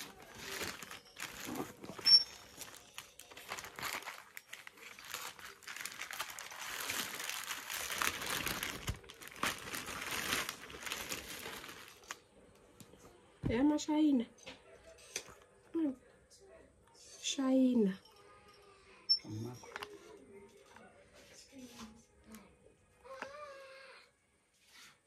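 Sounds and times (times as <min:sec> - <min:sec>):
plastic mailer bag crinkling: 0:00.0 - 0:12.2.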